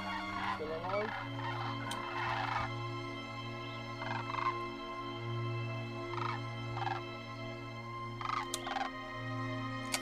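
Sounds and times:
geese calling: 0.0s - 9.2s
background music with held notes: 0.0s - 10.0s.

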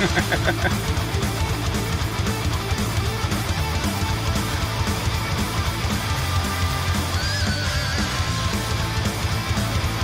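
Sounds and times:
electric guitar: 0.0s - 10.0s
heavy metal band playing live: 0.0s - 10.0s.

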